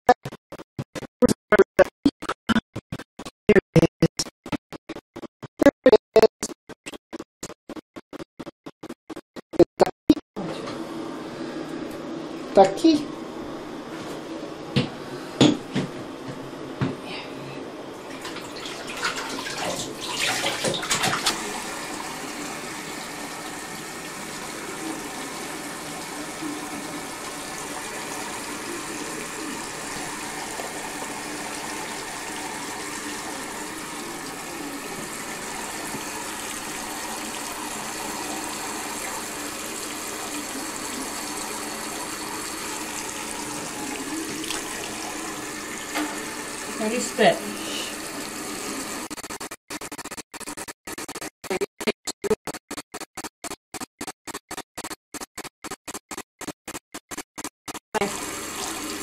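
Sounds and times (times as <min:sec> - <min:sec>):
water running from a tap: 0:18.0 - 0:49.1, 0:58.0 - 0:59.0.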